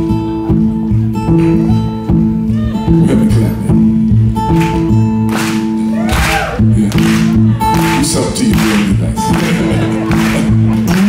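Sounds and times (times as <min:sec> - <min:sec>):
acoustic blues guitar: 0:00.0 - 0:11.0.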